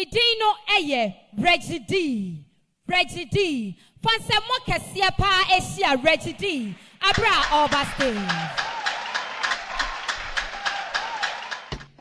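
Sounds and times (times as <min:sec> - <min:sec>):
audience clapping in time: 0:06.3 - 0:12.0.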